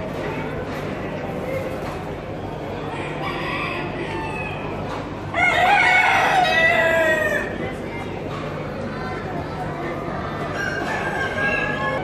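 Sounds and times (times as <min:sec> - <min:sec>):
rooster crowing: 0:05.3 - 0:07.5.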